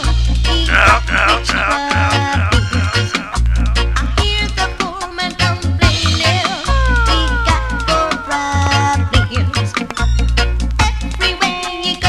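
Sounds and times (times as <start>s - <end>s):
reggae music with heavy bass: 0.0s - 12.0s.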